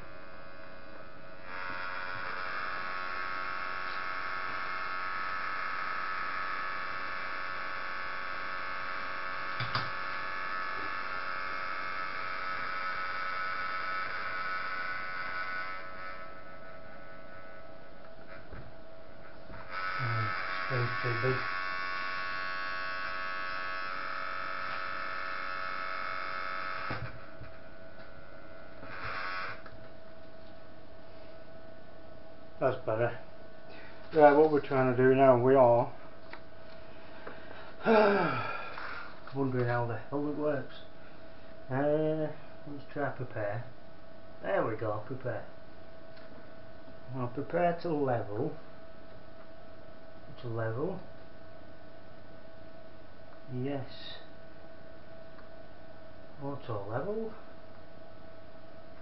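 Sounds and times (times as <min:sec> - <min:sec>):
stepper motors whining: 0:00.0 - 0:18.7, 0:19.4 - 0:29.8, 0:37.8 - 0:39.3
steady hum: 0:00.0 - 0:59.0.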